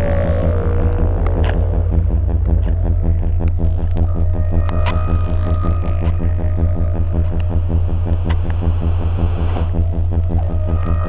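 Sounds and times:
pulsing low electronic drone: 0.0s - 11.0s.

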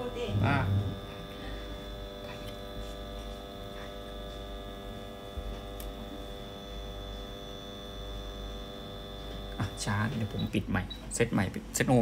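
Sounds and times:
stepper motor humming: 0.0s - 12.0s
thin high whine: 0.0s - 12.0s.

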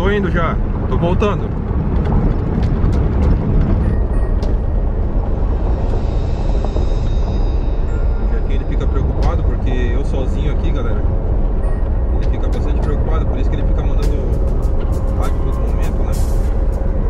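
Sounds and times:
pickup truck engine rumble: 0.0s - 17.0s
tyres on dirt road: 0.0s - 17.0s.

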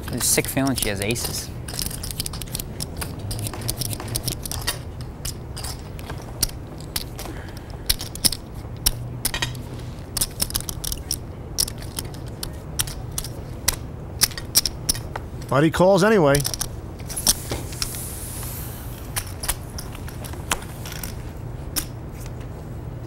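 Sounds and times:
low steady hum: 0.0s - 23.0s
poker chips clicking: 0.1s - 15.1s, 16.4s - 18.0s, 19.1s - 21.2s.

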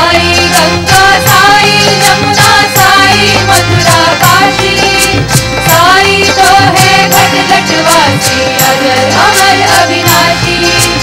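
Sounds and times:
instrumental accompaniment: 0.0s - 11.0s
voices singing devotional song: 0.0s - 11.0s
bright percussion strikes: 0.4s - 11.0s.

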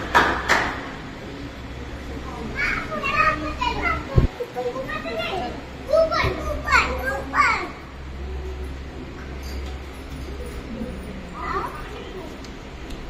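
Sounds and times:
young children chattering: 1.1s - 13.0s.

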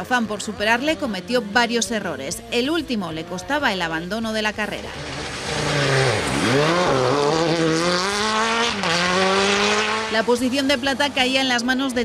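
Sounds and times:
rally car engine revving: 3.0s - 11.6s
gravel and tyres hissing: 4.7s - 10.4s.

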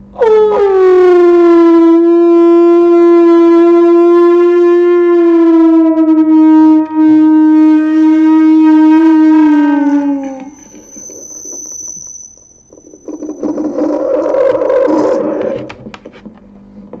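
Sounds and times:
pitched feedback tone sliding down: 2.8s - 15.7s
loud rough distorted buzz: 5.7s - 16.0s
faint high whine: 6.6s - 15.8s.

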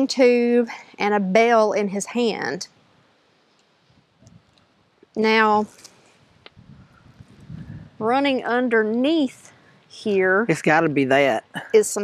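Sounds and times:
wind rumble on microphone: 3.9s - 4.6s, 6.4s - 8.4s.

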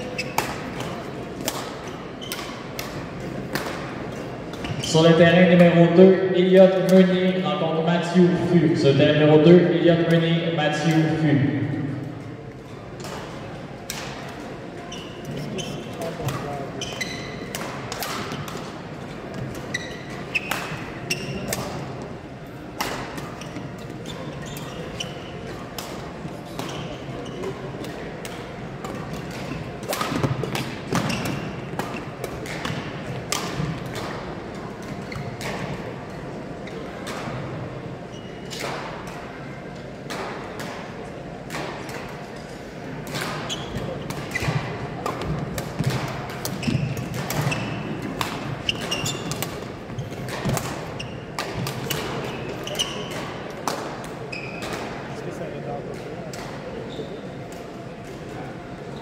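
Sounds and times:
shoe squeaks: 0.0s - 0.9s, 1.8s - 2.6s, 4.6s - 5.2s, 14.8s - 17.5s, 19.4s - 21.6s, 23.3s - 25.5s, 26.6s - 27.7s, 30.9s - 32.2s, 35.0s - 35.4s, 38.0s - 38.6s, 43.4s - 44.6s, 46.5s - 48.0s, 48.6s - 50.3s, 50.9s - 53.2s, 54.3s - 54.7s, 56.8s - 57.4s
murmur of voices: 0.0s - 59.0s
racket hitting shuttlecock: 0.2s - 4.6s, 13.0s - 14.4s, 15.9s - 21.9s, 22.7s - 23.5s, 27.8s - 35.8s, 43.0s - 55.0s.

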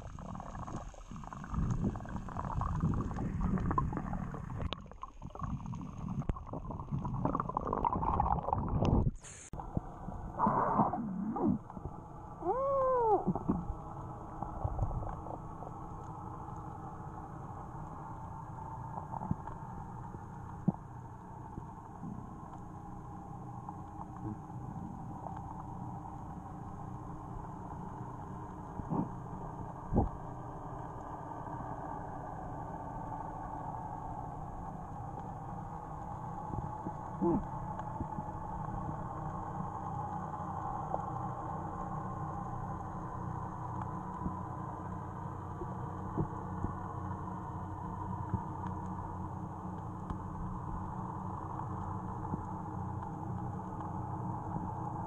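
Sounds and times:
muffled underwater hiss: 0.0s - 55.0s
underwater gurgling: 0.0s - 55.0s.

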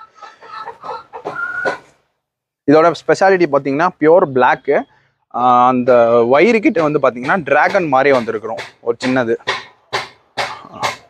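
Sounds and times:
birds calling: 0.0s - 2.1s, 3.2s - 11.0s.

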